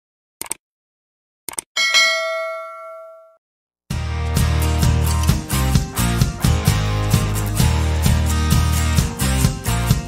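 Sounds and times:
quick clicks: 1.5 - 1.7
bell ding: 1.8 - 3.4.

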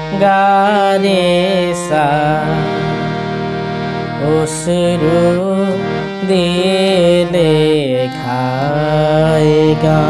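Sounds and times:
harmonium melody: 0.0 - 10.0
person singing gliding notes: 0.0 - 10.0.

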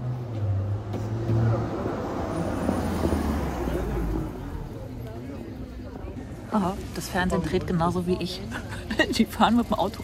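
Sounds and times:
car engine passing by: 0.0 - 4.9.

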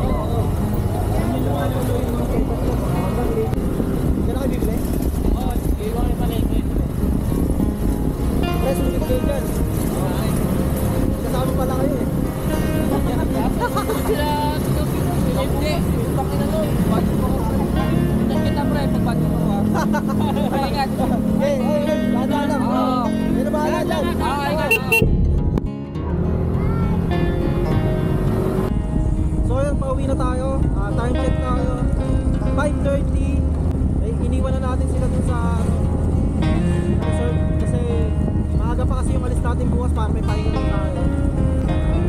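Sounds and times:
wind rush on microphone: 0.0 - 21.4, 27.6 - 42.0
motor scooter engine hum: 0.0 - 25.1
music: 0.0 - 42.0.

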